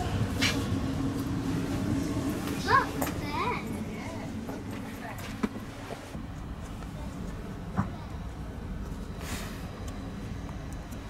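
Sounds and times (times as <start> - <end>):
train carriage hum: 0.0 - 11.0.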